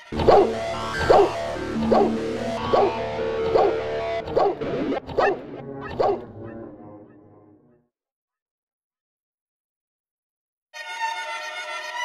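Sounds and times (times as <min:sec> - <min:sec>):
hip-hop beat: 0:00.0 - 0:06.4
dog barks: 0:00.2 - 0:06.3.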